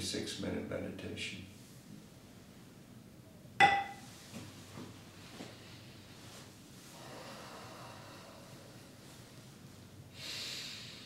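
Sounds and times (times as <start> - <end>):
faint room hiss: 0.0 - 11.0
person breathing: 6.8 - 9.3, 10.1 - 11.0.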